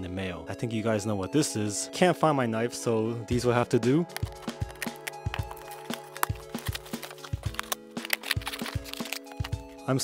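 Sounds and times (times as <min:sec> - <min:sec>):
background music with held notes: 0:00.0 - 0:10.0
scissors cutting tape and cardboard: 0:04.1 - 0:09.6.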